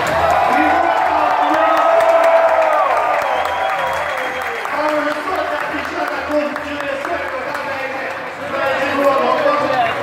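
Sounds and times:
noisy background: 0.0 - 10.0.

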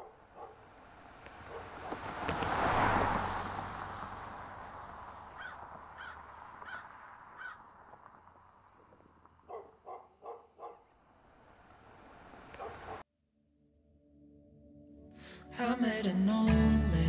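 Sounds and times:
bird calling: 5.4 - 7.6.

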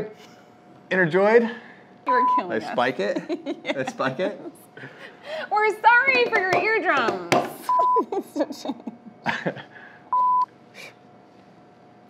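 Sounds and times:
electronic beep: 10.2 - 10.5.

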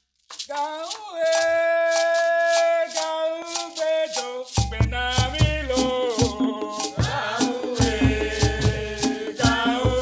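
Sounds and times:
gourd rattle shaken: 0.0 - 10.0.

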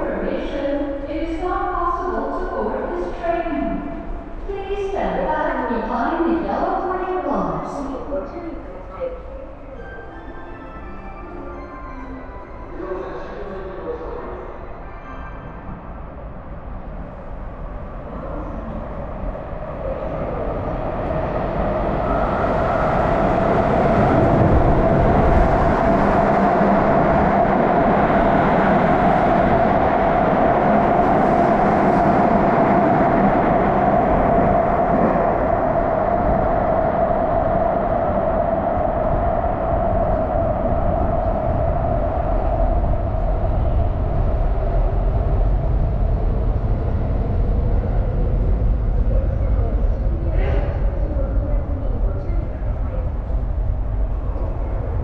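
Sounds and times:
subway train rumbling: 0.0 - 55.0.

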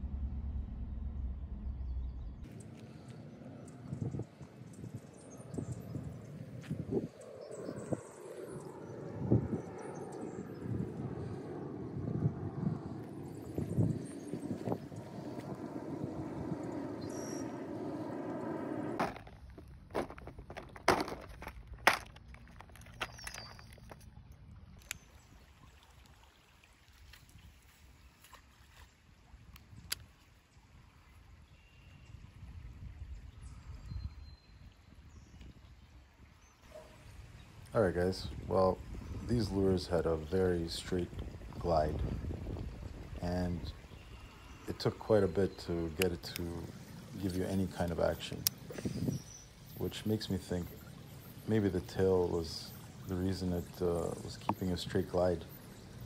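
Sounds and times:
open-air ambience: 0.0 - 56.0
handling noise with small knocks: 19.0 - 24.1.

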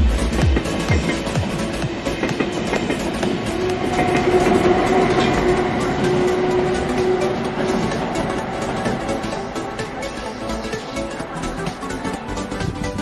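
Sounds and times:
background music: 0.0 - 13.0
train rumbling past: 0.0 - 13.0.

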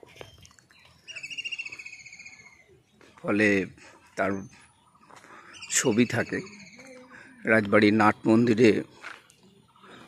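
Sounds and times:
bird trilling: 1.0 - 2.7, 4.8 - 7.2.

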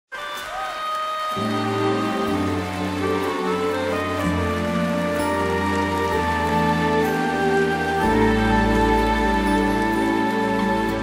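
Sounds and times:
strings and woodwinds chords: 0.2 - 11.0.

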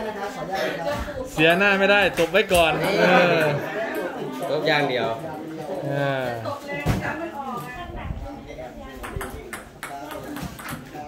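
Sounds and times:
table tennis ball hit: 9.1 - 11.0.

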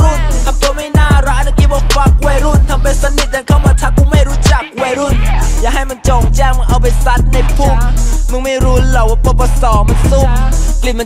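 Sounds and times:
deep sustained bass: 0.0 - 4.5, 5.1 - 11.0
hip hop track playing loud: 0.0 - 11.0
vocal line: 0.0 - 11.0.

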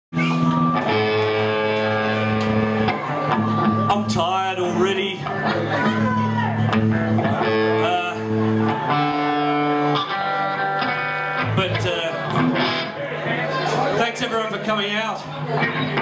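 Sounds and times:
electric guitar chords and notes: 0.1 - 14.0, 15.2 - 16.0.

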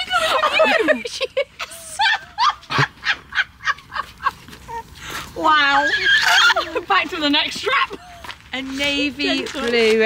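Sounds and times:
woman laughing: 0.0 - 4.9, 5.7 - 6.9.

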